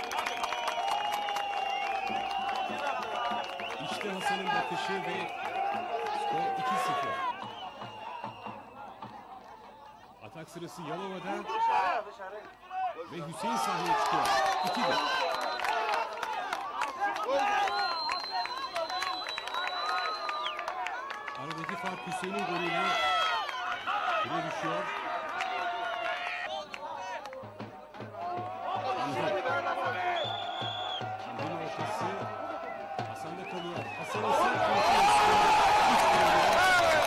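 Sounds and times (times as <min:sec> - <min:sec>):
music: 0:00.1 - 0:06.0, 0:06.6 - 0:10.0, 0:26.7 - 0:35.3.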